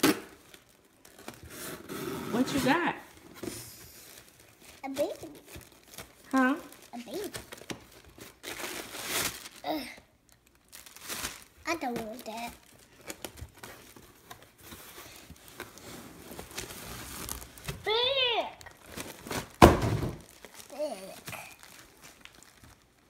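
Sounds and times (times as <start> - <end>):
packaging rustling and crinkling: 0.0 - 23.0
child vocal sounds: 9.6 - 10.1, 20.7 - 21.6.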